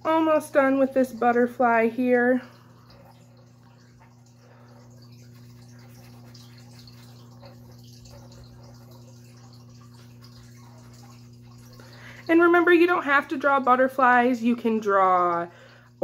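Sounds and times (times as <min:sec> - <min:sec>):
low electrical hum: 0:00.0 - 0:16.0.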